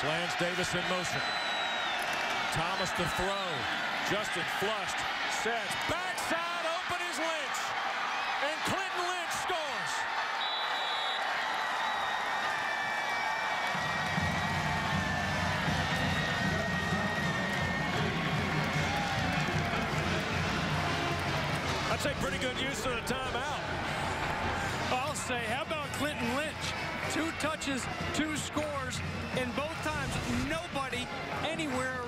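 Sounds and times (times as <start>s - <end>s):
crowd shouts: 0.0s - 32.0s
stadium crowd noise: 0.0s - 32.0s.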